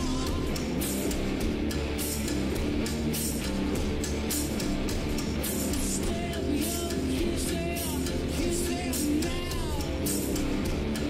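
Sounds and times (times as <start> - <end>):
drums with cymbal hits: 0.0 - 11.0
electric guitar: 0.0 - 11.0
live rock music: 0.0 - 11.0.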